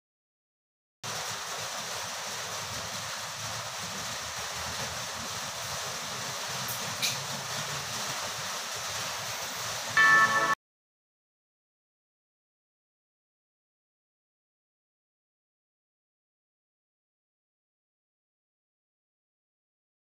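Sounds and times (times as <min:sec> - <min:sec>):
steady background hiss: 0:01.1 - 0:10.6.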